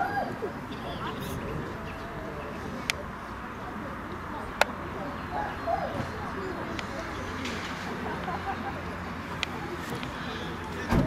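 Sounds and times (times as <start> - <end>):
distant voices: 0.0 - 11.0
faint bird cooing: 5.0 - 7.2.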